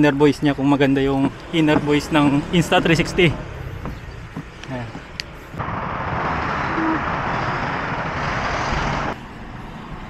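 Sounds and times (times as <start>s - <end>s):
busy road traffic: 0.0s - 10.0s.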